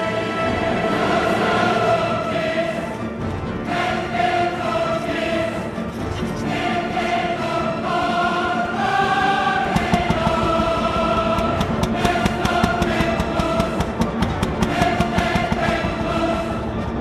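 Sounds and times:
choir singing held chords: 0:00.0 - 0:17.0.

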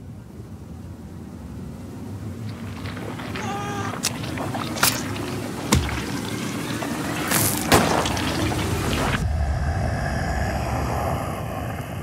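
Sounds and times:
steady low rumble: 0:07.8 - 0:12.0.

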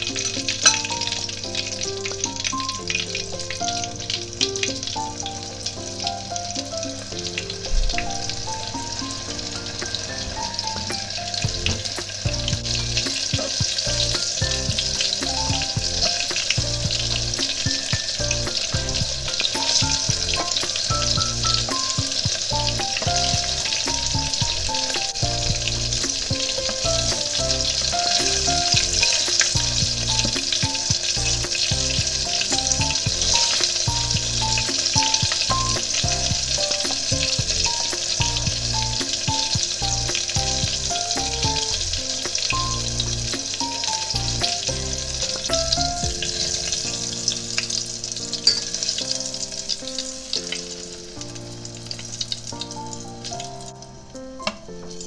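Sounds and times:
chopsticks turning food in oil: 0:00.0 - 0:50.6
food deep-frying in oil: 0:00.0 - 0:55.0.

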